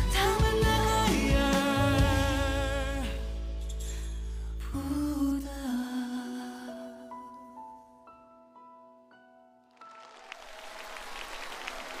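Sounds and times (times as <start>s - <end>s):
audience applause: 9.8s - 12.0s.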